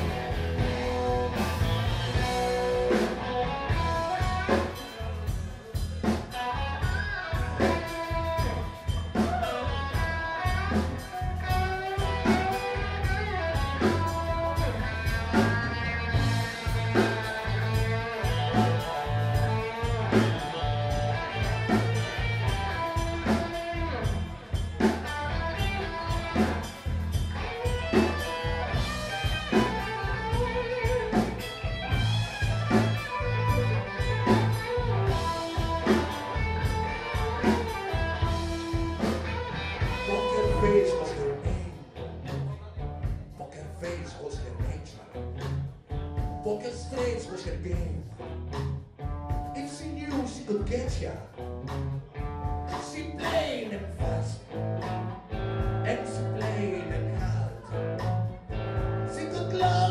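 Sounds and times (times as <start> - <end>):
drum kit beat: 0.0 - 43.4, 44.5 - 59.9
electric guitar: 0.0 - 59.9.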